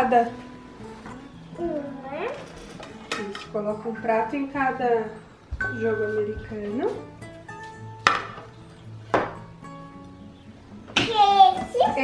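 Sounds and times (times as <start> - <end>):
quiet plucked background music: 0.0 - 12.0.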